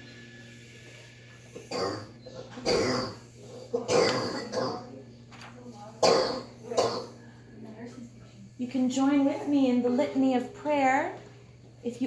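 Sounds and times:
person coughing: 1.7s - 4.9s, 6.0s - 7.2s.

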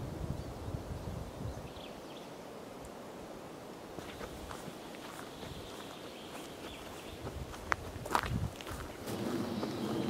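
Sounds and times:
footsteps on dirt track: 4.0s - 10.0s.

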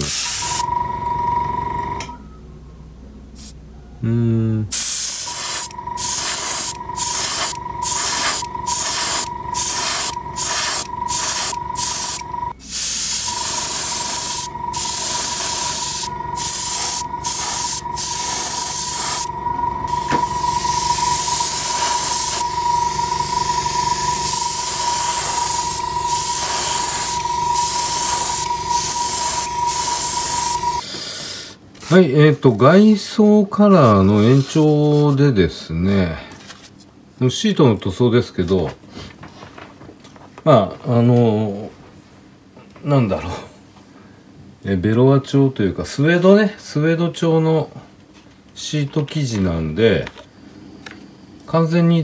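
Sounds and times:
airbrush spraying: 0.0s - 0.6s, 4.7s - 19.3s, 19.9s - 30.8s
steady tone: 5.5s - 12.6s, 13.2s - 30.8s.

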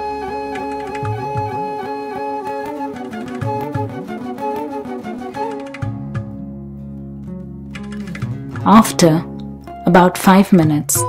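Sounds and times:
instrumental music with plucked strings: 0.0s - 11.0s.

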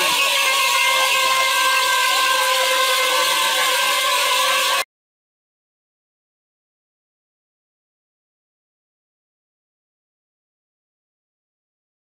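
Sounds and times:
held drone tones: 0.0s - 4.9s.

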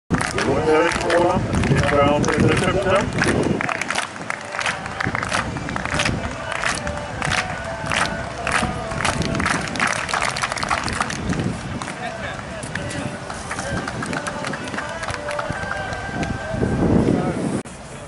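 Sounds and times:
spectators clapping in unison: 0.1s - 16.4s
crowd noise: 0.1s - 18.0s.

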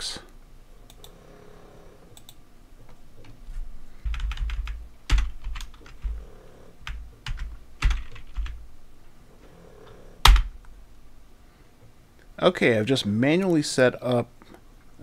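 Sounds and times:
typing on computer keyboard: 4.0s - 6.2s, 6.8s - 8.6s.

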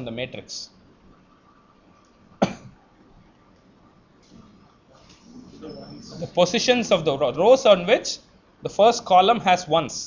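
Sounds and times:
man coughing: 2.4s - 2.8s.

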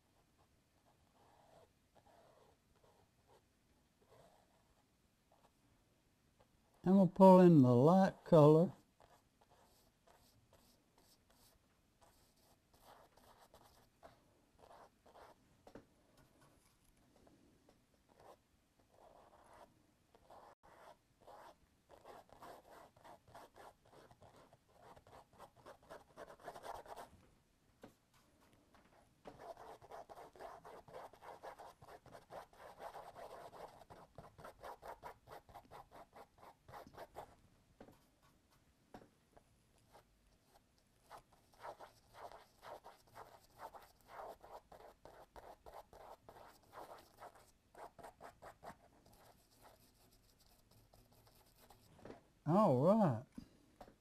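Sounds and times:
paintbrush scratching on wall: 9.0s - 15.4s, 18.1s - 27.1s, 29.3s - 37.3s, 39.9s - 51.9s.

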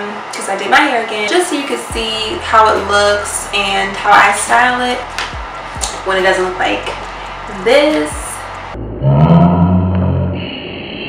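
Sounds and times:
deep growl-like sound: 8.7s - 11.0s.

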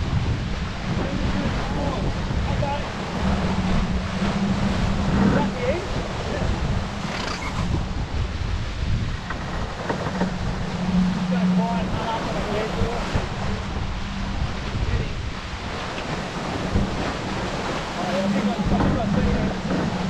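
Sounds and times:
steady low hum: 0.0s - 20.0s
water rushing along hull: 0.0s - 20.0s
wind buffeting microphone: 0.0s - 20.0s.

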